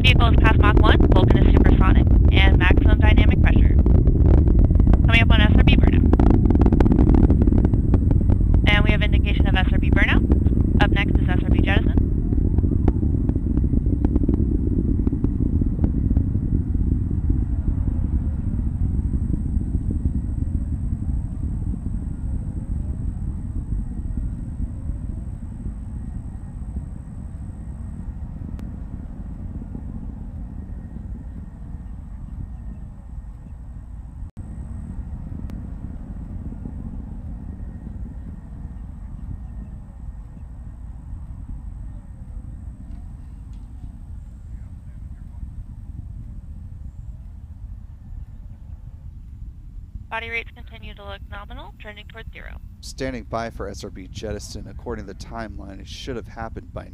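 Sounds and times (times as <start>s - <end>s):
deep rocket engine rumble: 0.0s - 56.9s.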